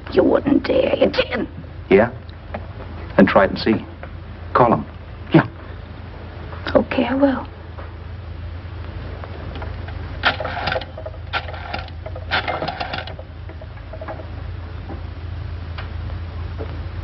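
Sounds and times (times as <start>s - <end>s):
rotary telephone dial clicking: 10.3s - 13.2s.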